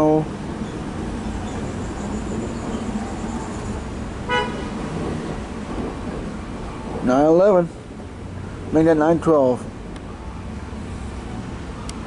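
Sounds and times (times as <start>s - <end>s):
short horn toot: 4.3s - 4.7s.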